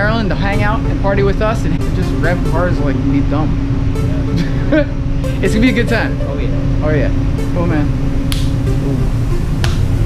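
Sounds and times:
hand slaps: 0:08.3 - 0:08.6.

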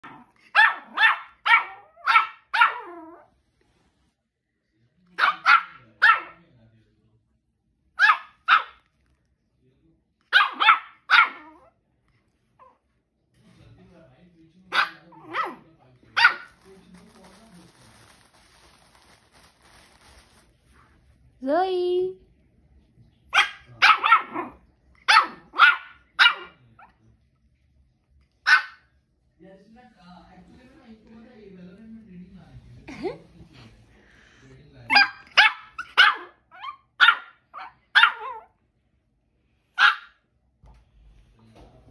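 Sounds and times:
puppy barking high-pitched yaps: 0:00.0 - 0:03.1, 0:05.2 - 0:06.4, 0:08.0 - 0:08.8, 0:10.3 - 0:11.7, 0:14.7 - 0:15.6, 0:16.2 - 0:16.6, 0:23.3 - 0:26.6, 0:28.4 - 0:28.9, 0:34.9 - 0:38.5, 0:39.8 - 0:40.2.

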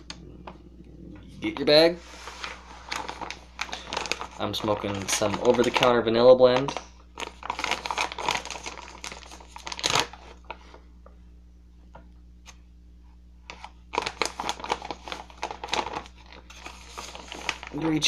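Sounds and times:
plastic bag crinkling: 0:00.0 - 0:10.6, 0:13.5 - 0:18.0.

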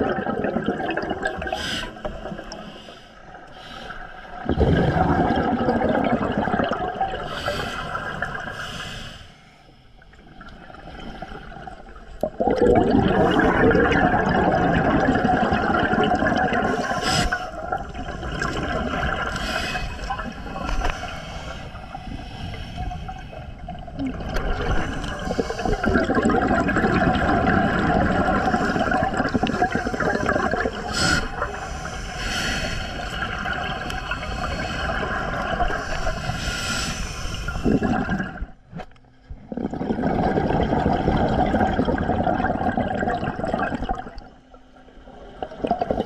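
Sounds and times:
exhaled bubbles gurgling: 0:00.0 - 0:08.8, 0:10.0 - 0:46.0
scuba breathing underwater: 0:00.4 - 0:11.7, 0:12.3 - 0:38.6.

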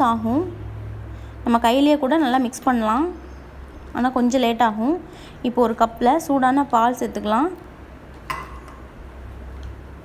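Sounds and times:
low steady hum: 0:00.0 - 0:10.0
kitchenware clink: 0:08.3 - 0:08.9.

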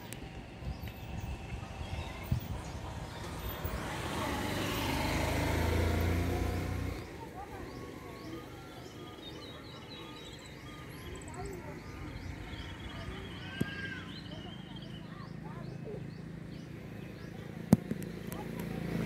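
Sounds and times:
birds chirping: 0:00.0 - 0:19.0
vehicle passing by: 0:01.1 - 0:09.6, 0:10.7 - 0:19.0.

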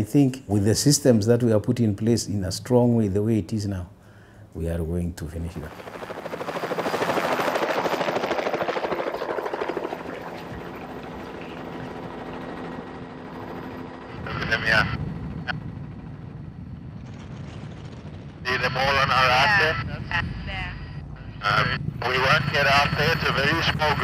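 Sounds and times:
helicopter rotor chop: 0:05.6 - 0:20.2, 0:21.4 - 0:24.0.

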